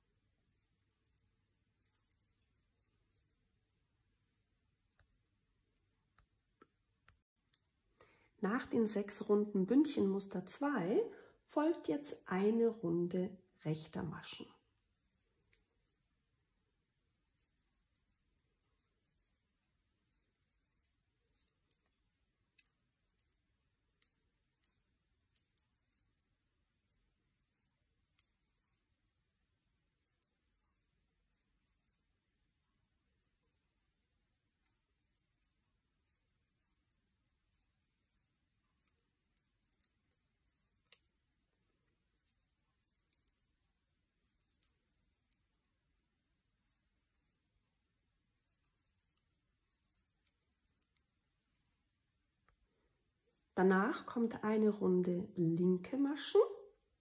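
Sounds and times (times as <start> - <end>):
knitting needles clicking: 0.1 - 3.8, 14.9 - 16.1, 17.0 - 47.5, 48.3 - 51.7.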